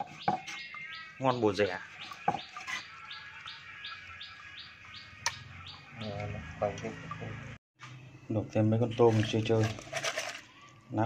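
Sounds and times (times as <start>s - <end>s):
small bird chirping: 0.0s - 7.3s.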